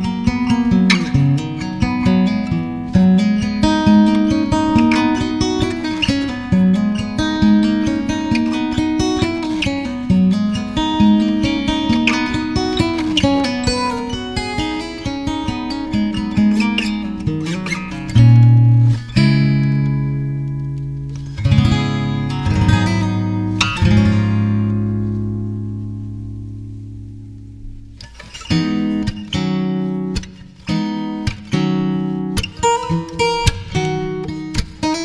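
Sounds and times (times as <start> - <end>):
acoustic guitar chords: 0.0 - 35.0.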